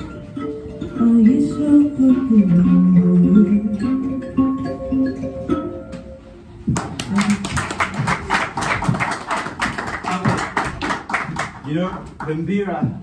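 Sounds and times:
plucked instrument notes: 0.0s - 8.3s
audience applause: 6.8s - 12.4s.

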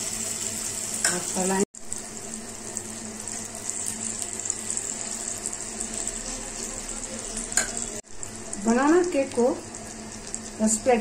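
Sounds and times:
batter sizzling in a pan: 0.0s - 11.0s.

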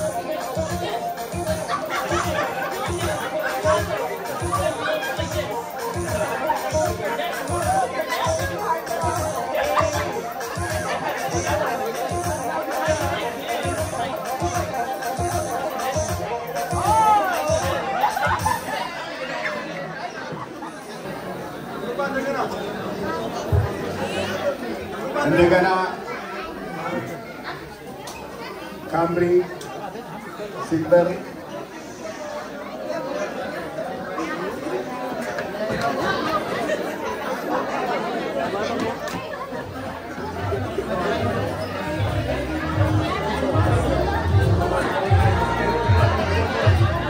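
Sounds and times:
background music: 0.0s - 18.9s, 40.4s - 47.0s
louder voices: 0.0s - 27.8s, 31.3s - 47.0s
indistinct conversation: 0.0s - 47.0s.

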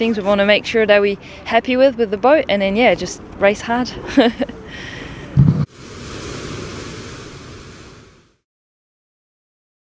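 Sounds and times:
steady hiss-like noise: 5.2s - 8.4s
low thump: 5.3s - 5.7s.

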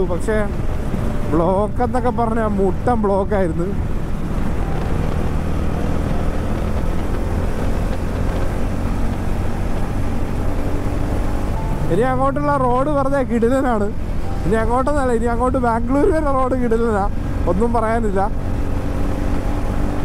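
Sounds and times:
motorcycle engine cruising: 0.0s - 20.0s
road and wind rumble: 0.0s - 20.0s.

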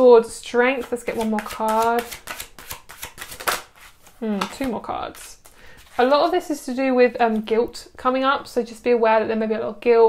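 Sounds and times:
cards being shuffled: 0.8s - 6.4s.

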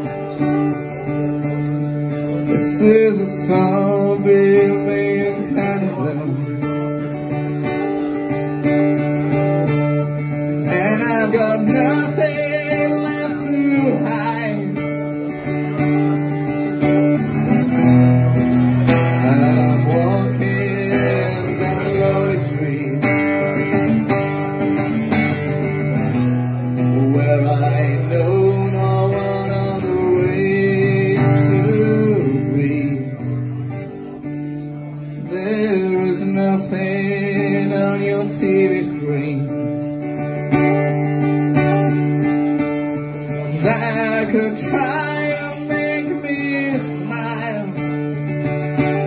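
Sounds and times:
acoustic guitar strumming: 0.0s - 49.0s
man singing: 0.0s - 49.0s.

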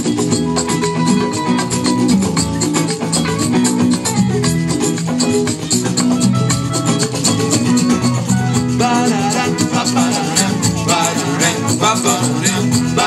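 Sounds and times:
live band playing: 0.0s - 13.0s
shaker rhythm: 0.0s - 13.0s
person singing: 8.6s - 13.0s.

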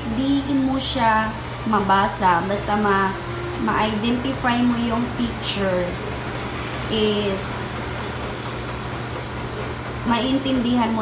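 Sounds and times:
laundromat machinery humming: 0.0s - 11.0s.

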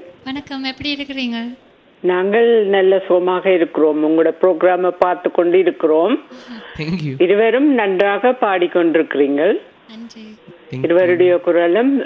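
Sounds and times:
person speaking over telephone: 6.4s - 7.2s, 9.9s - 11.3s.

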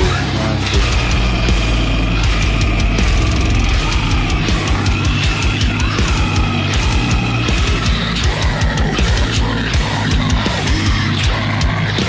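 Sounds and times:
heavy distorted guitars: 0.0s - 12.0s
heavy metal music: 0.0s - 12.0s
fast drum hits: 0.8s - 11.9s.

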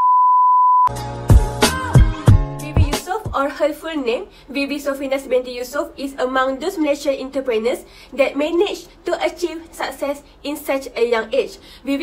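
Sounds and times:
steady test tone beep: 0.0s - 0.9s
music with a beat: 0.9s - 3.1s.

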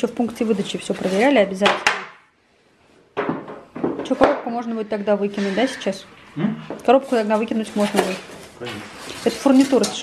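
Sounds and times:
cardboard and foam rustling: 7.1s - 10.0s.

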